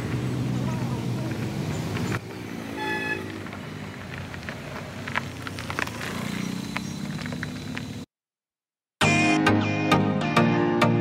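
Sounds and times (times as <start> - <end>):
car engine humming: 0.0 - 8.1
car horn toot: 2.7 - 3.4.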